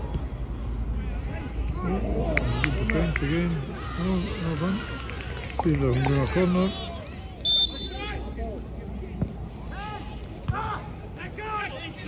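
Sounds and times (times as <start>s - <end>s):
players and spectators shouting: 0.9s - 8.5s.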